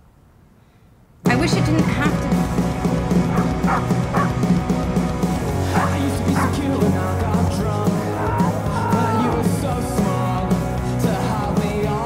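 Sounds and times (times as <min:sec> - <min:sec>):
rock music: 0:01.2 - 0:12.0.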